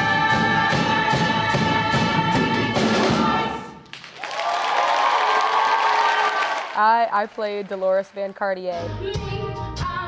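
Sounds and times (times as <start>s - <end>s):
stage chorus with music: 0.0s - 4.1s
audience applause and cheering: 3.8s - 8.5s.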